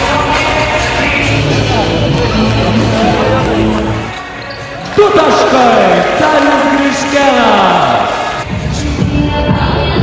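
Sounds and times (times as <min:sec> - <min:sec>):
arena music over loudspeakers: 0:00.0 - 0:10.0.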